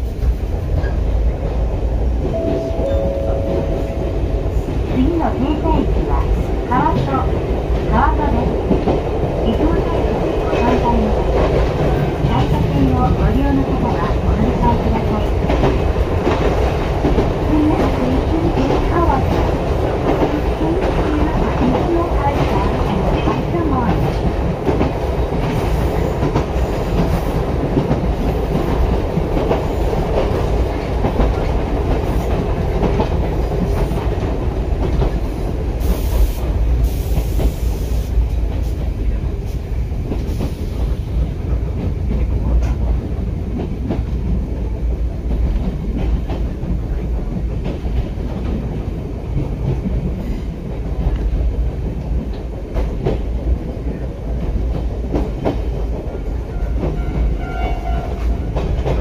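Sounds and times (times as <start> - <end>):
train wheels rumbling on track: 0.0 - 59.0.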